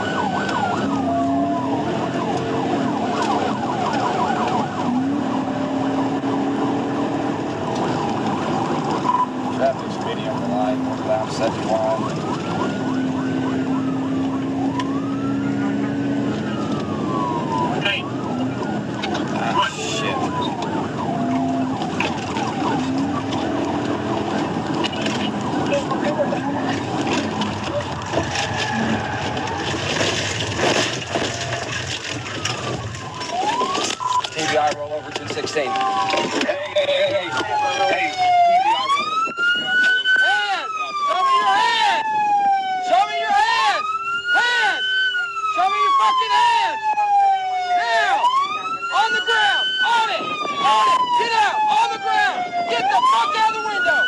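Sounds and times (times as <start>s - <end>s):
police siren wailing: 0.0s - 54.0s
road and wind noise: 0.0s - 54.0s.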